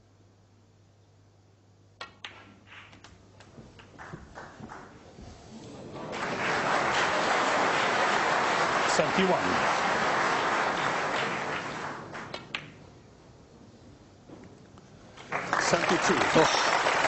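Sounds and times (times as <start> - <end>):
balls clicking together: 2.0 - 5.0, 12.2 - 12.8
cue striking ball: 2.0 - 5.0
audience applauding: 3.8 - 5.0, 5.9 - 12.4, 15.2 - 17.0.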